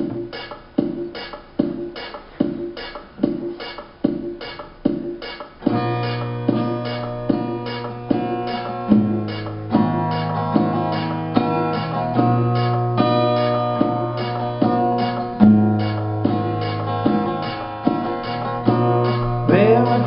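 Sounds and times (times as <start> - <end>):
acoustic guitar strumming: 5.3 - 20.0
man singing: 19.4 - 20.0.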